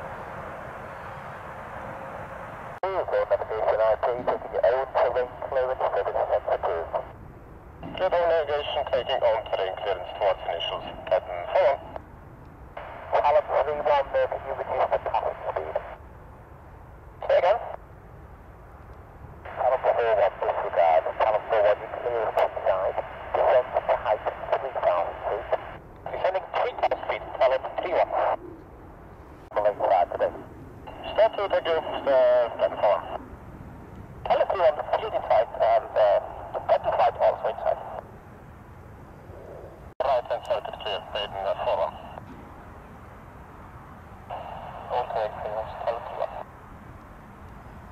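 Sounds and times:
radio hiss: 0:02.7 - 0:07.2, 0:07.8 - 0:12.0, 0:12.8 - 0:16.0, 0:17.2 - 0:17.8, 0:19.4 - 0:28.4, 0:29.4 - 0:33.2, 0:34.2 - 0:38.0, 0:39.4 - 0:42.2, 0:44.2 - 0:46.5
radio voice transmissions: 0:02.8 - 0:07.2, 0:07.8 - 0:12.0, 0:12.8 - 0:16.0, 0:17.2 - 0:17.8, 0:19.4 - 0:28.4, 0:29.5 - 0:33.2, 0:34.2 - 0:38.0, 0:39.4 - 0:42.2, 0:44.2 - 0:46.5.

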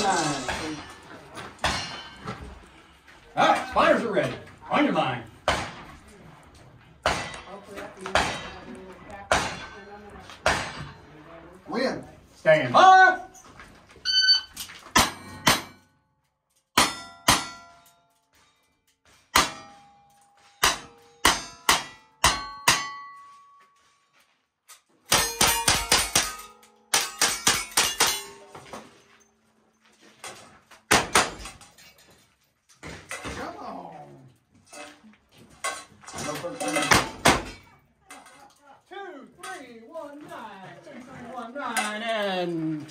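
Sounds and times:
steel plates ringing: 0:19.4 - 0:23.6.

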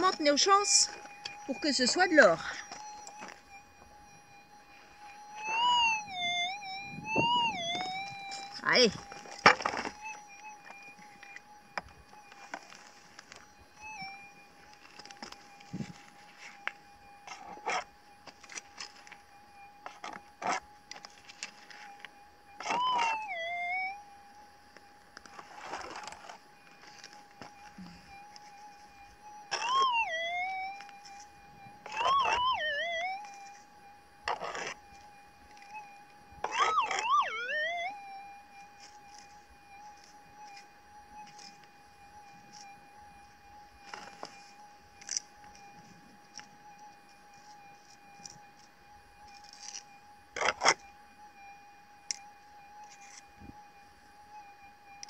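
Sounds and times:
metal detector warbling signal: 0:00.0 - 0:03.9, 0:05.2 - 0:14.2, 0:22.6 - 0:24.0, 0:29.5 - 0:33.6, 0:35.5 - 0:38.2
metal detector threshold tone: 0:00.0 - 0:19.1, 0:21.4 - 0:24.0, 0:29.5 - 0:33.6, 0:34.2 - 0:38.2
digging in gravelly soil: 0:25.2 - 0:27.8.

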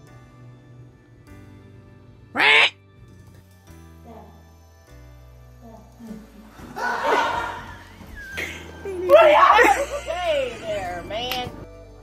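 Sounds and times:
background music: 0:00.0 - 0:12.0
loud squawk rising in pitch: 0:02.4 - 0:02.8.

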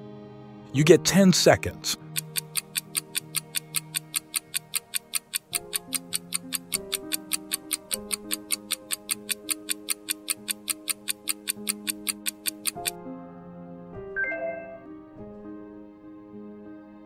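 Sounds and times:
soft background music: 0:00.0 - 0:17.0
fast clock ticking: 0:02.0 - 0:13.0.

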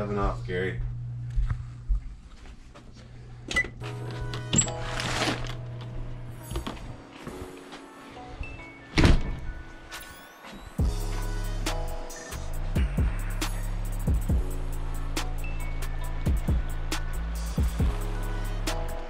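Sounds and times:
steady low hum: 0:00.0 - 0:03.8
music: 0:03.8 - 0:19.0.

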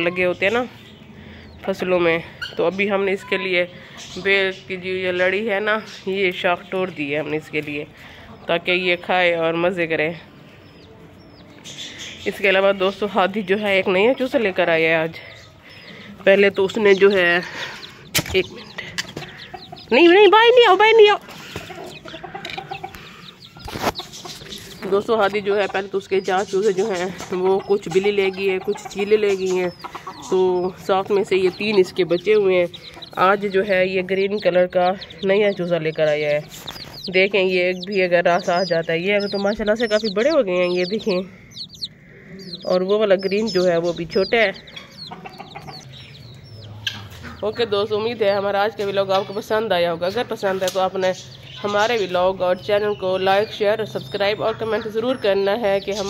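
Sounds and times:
chicks peeping: 0:00.0 - 0:56.0
chicken clucking softly: 0:26.5 - 0:33.3, 0:38.6 - 0:47.6.

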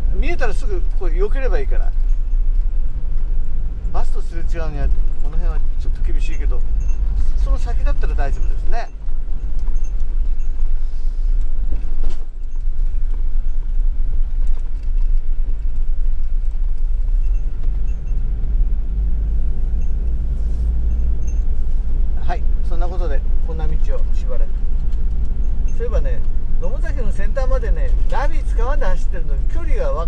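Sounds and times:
engine and road rumble: 0:00.0 - 0:30.0.

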